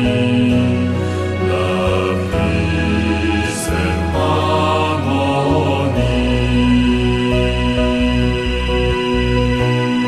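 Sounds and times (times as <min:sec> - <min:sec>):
chanted mantra singing: 0:00.0 - 0:08.6
backing music: 0:00.0 - 0:10.0.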